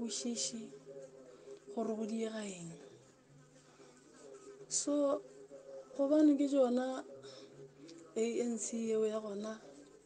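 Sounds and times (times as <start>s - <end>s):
person's voice: 0.0s - 10.0s.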